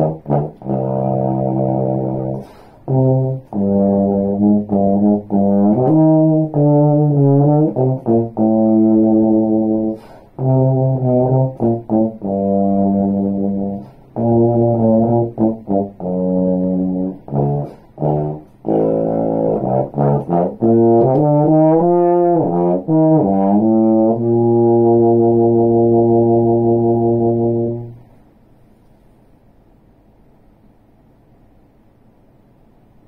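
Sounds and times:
bass trombone playing low notes: 0.0s - 28.1s.

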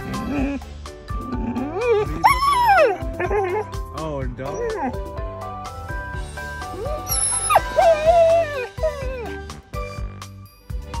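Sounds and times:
dog whining: 1.3s - 3.8s, 4.4s - 5.0s, 6.6s - 10.0s.

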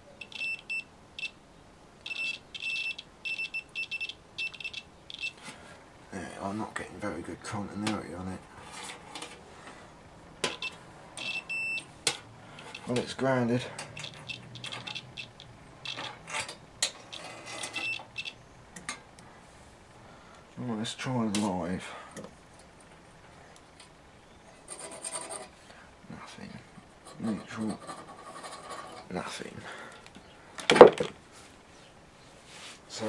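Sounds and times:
faint room hiss: 0.0s - 33.0s
continuity tester beep: 0.1s - 1.4s, 2.0s - 5.4s, 10.5s - 11.9s, 12.6s - 13.0s, 14.0s - 16.2s, 17.1s - 18.4s
metal probe scraping metal: 13.8s - 18.3s.

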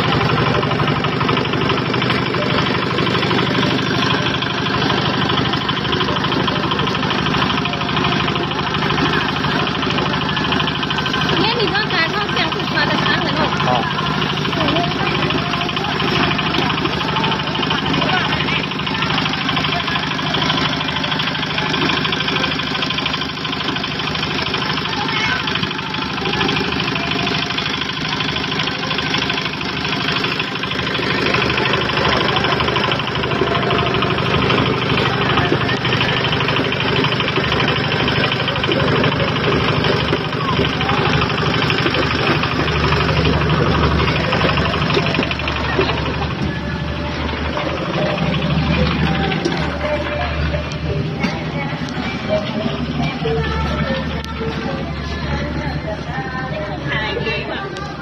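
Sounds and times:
concrete mixer engine running: 0.0s - 58.0s
crowd of people talking: 0.0s - 58.0s.

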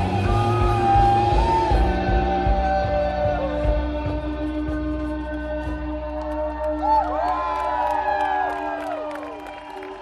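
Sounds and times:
crowd cheering and whooping: 0.0s - 3.8s, 5.9s - 10.0s.

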